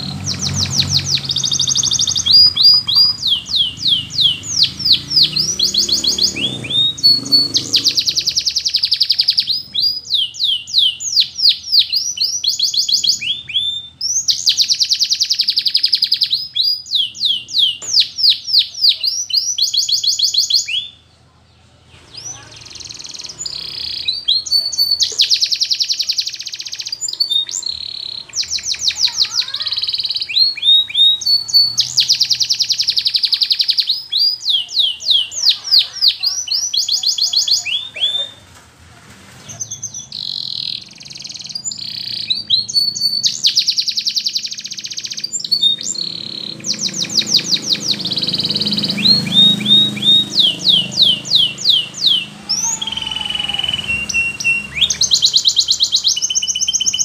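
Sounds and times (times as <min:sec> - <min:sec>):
canary singing: 0:00.0 - 0:21.3, 0:21.9 - 0:38.6, 0:39.3 - 0:57.0.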